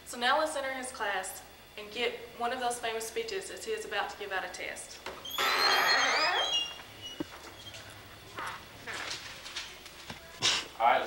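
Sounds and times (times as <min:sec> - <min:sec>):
door scraping open: 0:05.2 - 0:07.8
hinge squeaks: 0:05.2 - 0:07.9.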